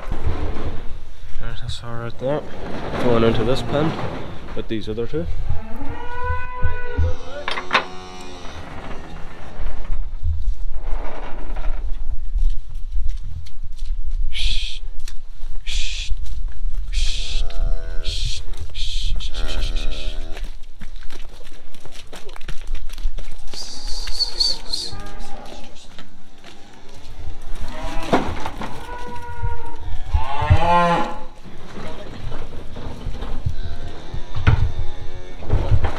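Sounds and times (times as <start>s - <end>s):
low rumble: 0.0s - 13.6s
cattle lowing: 5.3s - 10.1s, 16.8s - 20.6s, 23.3s - 35.9s
short hissing bursts: 16.9s - 17.5s.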